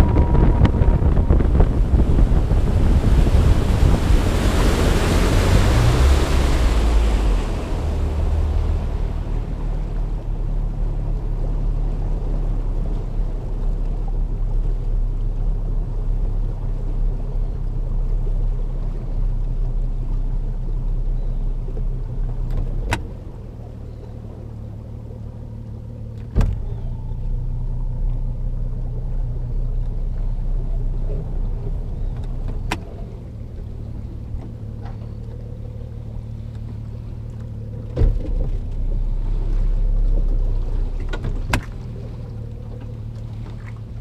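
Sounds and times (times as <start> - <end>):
outboard motor running: 0.0 - 44.0
sharp clunks: 26.2 - 26.9, 37.9 - 38.7.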